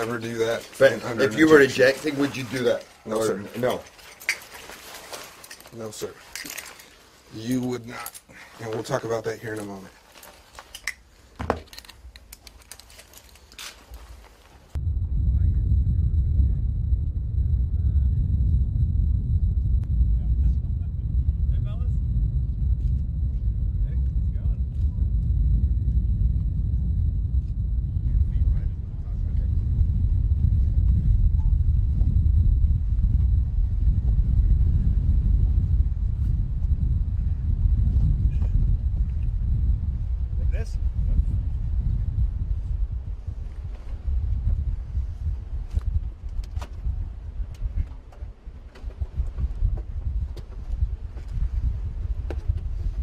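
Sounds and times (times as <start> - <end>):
low rumble of airfield noise: 5.1 - 53.0
faint high whine: 13.9 - 45.9.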